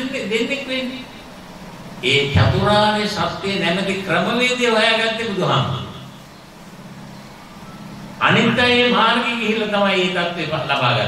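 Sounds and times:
low hum and faint hiss: 0:00.0 - 0:11.0.

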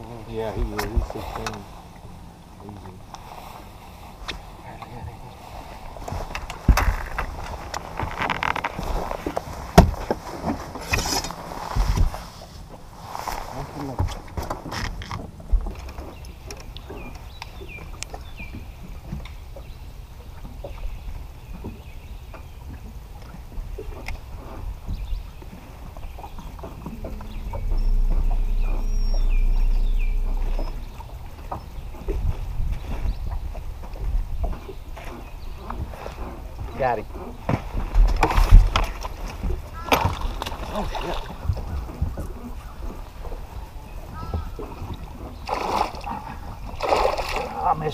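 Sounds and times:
knocks on boat deck: 0:09.7 - 0:10.6
steady low hum: 0:25.7 - 0:34.4.

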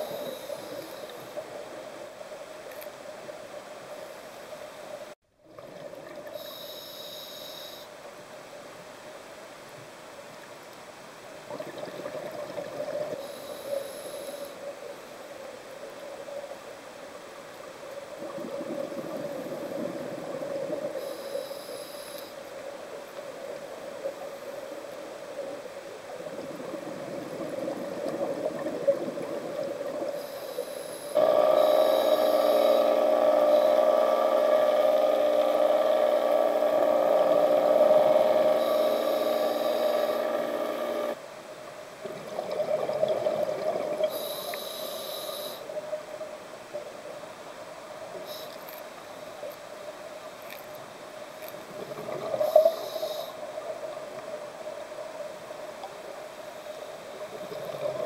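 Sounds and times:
scuba regulator breathing: 0:00.0 - 0:01.4, 0:06.3 - 0:07.9, 0:13.2 - 0:14.6, 0:20.8 - 0:22.4, 0:30.1 - 0:41.2, 0:44.0 - 0:45.7, 0:52.3 - 0:53.4
underwater bubbles: 0:05.4 - 0:06.6, 0:11.4 - 0:14.8, 0:18.0 - 0:22.2, 0:22.9 - 0:41.2, 0:42.0 - 0:46.9, 0:51.4 - 0:58.0.

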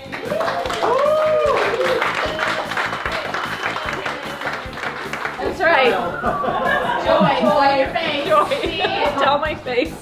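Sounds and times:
small group applauding: 0:00.0 - 0:06.8
background music: 0:00.0 - 0:10.0
person whooping: 0:00.3 - 0:02.7.

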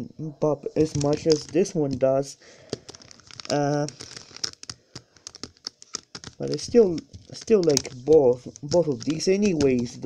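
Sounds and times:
plastic puzzle cube clicking: 0:00.8 - 0:02.0, 0:02.6 - 0:10.0.

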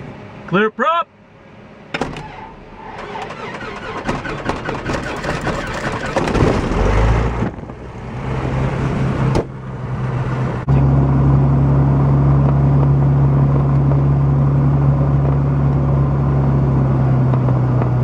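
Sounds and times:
airplane engine drone: 0:00.0 - 0:18.0
starter cranking: 0:02.0 - 0:06.6.

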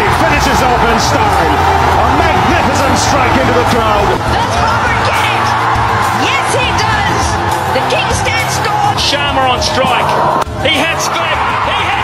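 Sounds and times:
background music: 0:00.0 - 0:12.0
stadium crowd cheering: 0:00.0 - 0:12.0
television sports commentary: 0:00.0 - 0:12.0.

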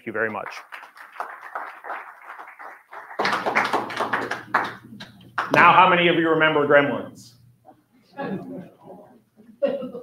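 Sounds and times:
audience clapping: 0:00.0 - 0:05.8.

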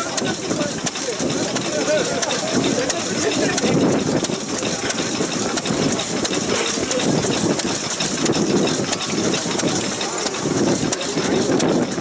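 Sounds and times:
crowd chatter: 0:00.0 - 0:12.0
stationary engine beating slowly: 0:00.0 - 0:12.0.

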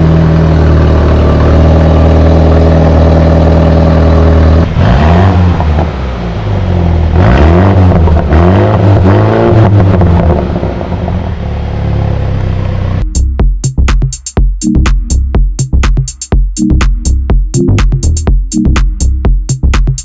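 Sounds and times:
car engine revving at exhaust: 0:00.0 - 0:13.0.

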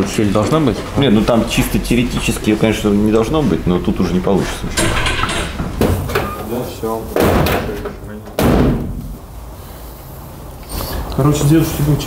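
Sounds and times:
steel car door slamming: 0:08.4 - 0:09.0.

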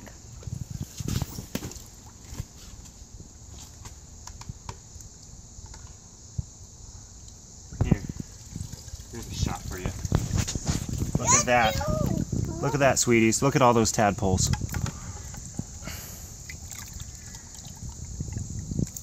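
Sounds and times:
water splashing and dripping: 0:08.0 - 0:11.2, 0:14.6 - 0:19.0.

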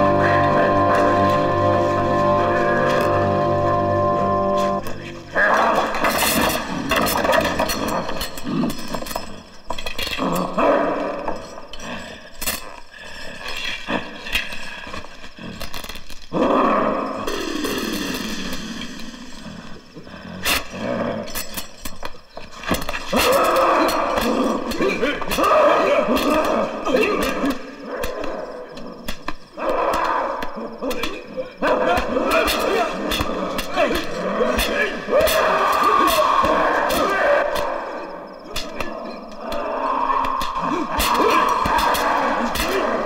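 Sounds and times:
sustained music chords: 0:00.0 - 0:04.9
growling roar-like cries: 0:16.3 - 0:17.6, 0:23.1 - 0:28.9, 0:29.5 - 0:43.0.

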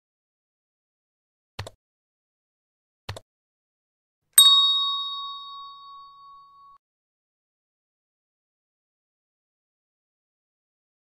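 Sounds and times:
notification bell ding: 0:04.4 - 0:06.8.

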